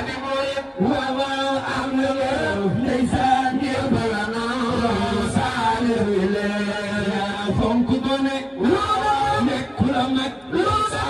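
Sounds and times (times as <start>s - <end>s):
person chanting religious song: 0.0s - 11.0s.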